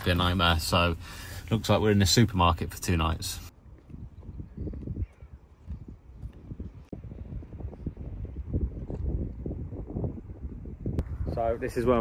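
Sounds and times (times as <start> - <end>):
wind buffeting microphone: 3.3 - 12.0.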